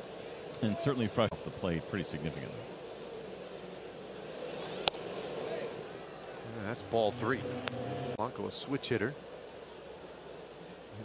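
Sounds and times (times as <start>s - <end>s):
crowd murmur: 3.0s - 8.2s.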